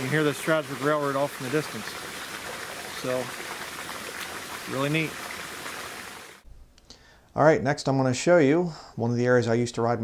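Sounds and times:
creek water rushing: 0.0 - 6.4.

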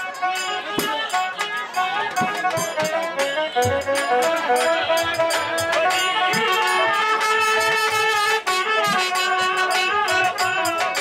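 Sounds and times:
drum beats: 0.0 - 11.0
trumpet melody: 0.0 - 11.0.

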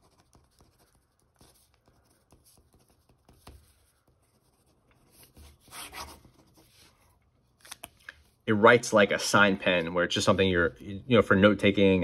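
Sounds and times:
pen scratching on paper: 0.0 - 6.9.

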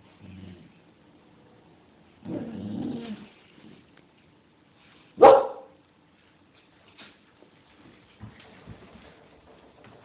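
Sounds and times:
dog low wavering vocal: 2.3 - 3.3.

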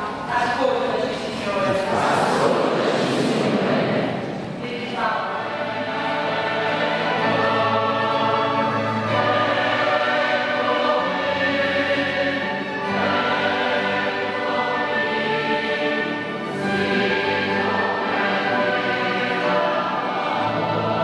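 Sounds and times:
choir singing held chords: 1.5 - 21.0.

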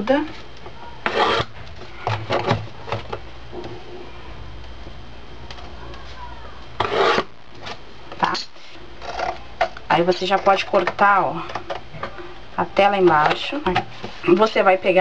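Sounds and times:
metal point scraping paperboard: 1.0 - 1.5, 6.8 - 7.3.

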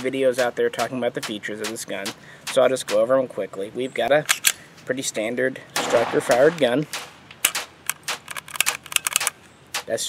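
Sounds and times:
pistol trigger dry clicks: 5.8 - 9.9.

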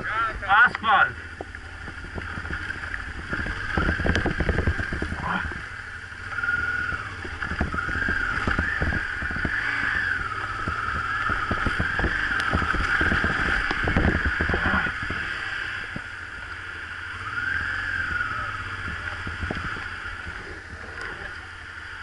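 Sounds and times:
high whine: 0.0 - 22.0
motorcycle engine running: 0.0 - 22.0
wind rumble on microphone: 0.0 - 22.0.

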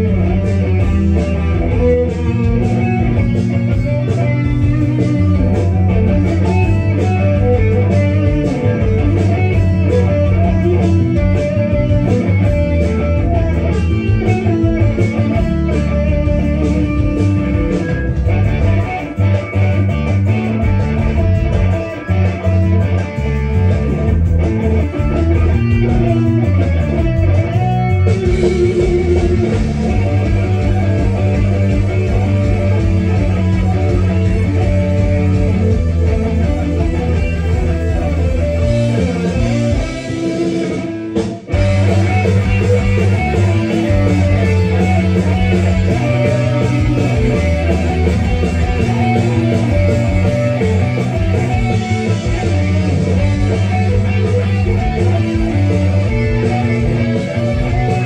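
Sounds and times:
electric guitar rock instrumental: 0.0 - 58.0.

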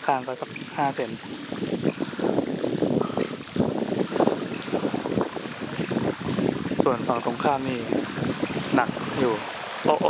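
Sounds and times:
bicycle wheels splashing through water: 0.0 - 10.0
wind noise on microphone: 0.0 - 10.0.

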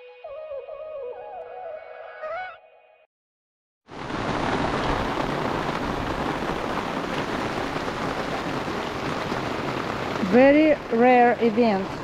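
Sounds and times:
steady rain falling: 3.9 - 12.0.

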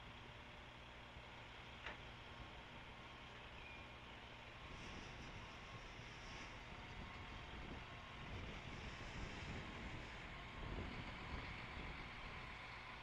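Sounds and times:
truck engine driving off: 1.2 - 13.0.

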